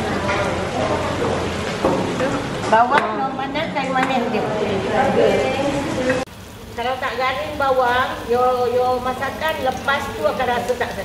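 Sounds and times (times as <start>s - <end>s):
onions sizzling in oil: 5.3s - 11.0s.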